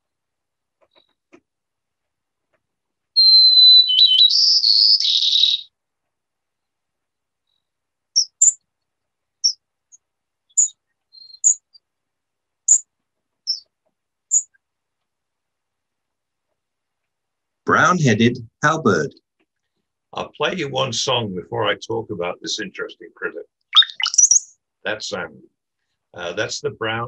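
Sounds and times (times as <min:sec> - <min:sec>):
sparrow song: 0:03.1 - 0:05.8, 0:07.4 - 0:08.8, 0:09.4 - 0:11.9, 0:12.6 - 0:14.7, 0:23.6 - 0:24.6
short high bird calls: 0:03.2 - 0:05.7, 0:10.5 - 0:11.8, 0:23.8 - 0:24.5.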